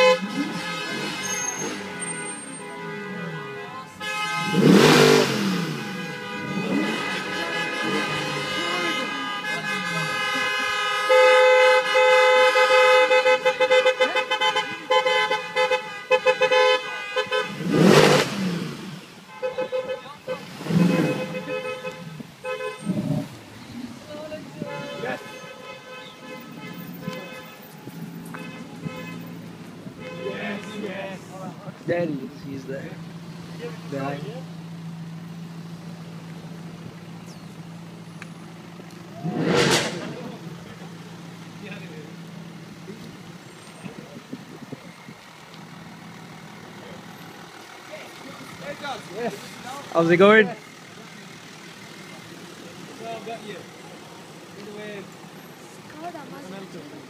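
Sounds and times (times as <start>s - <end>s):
car horn: 0.0s - 44.0s
cars driving past: 0.0s - 57.0s.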